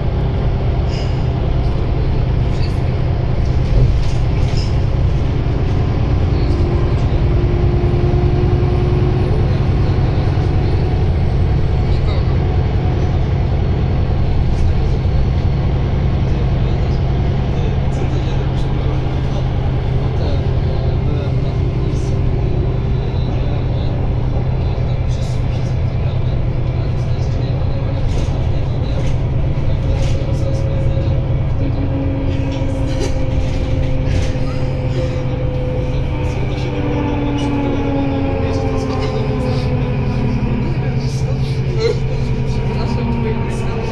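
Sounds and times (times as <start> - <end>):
bus diesel engine drone: 0.0 - 43.9
drivetrain whine: 0.0 - 43.9.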